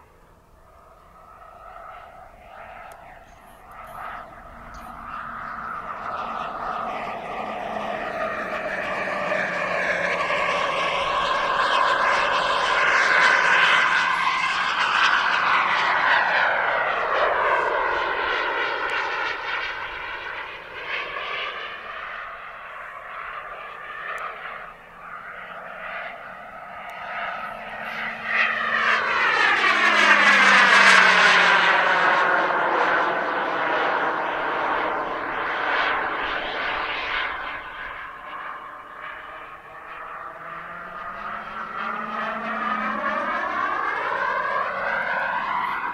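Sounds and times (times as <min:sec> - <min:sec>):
model jet turbine whining: 0:00.0 - 0:45.9.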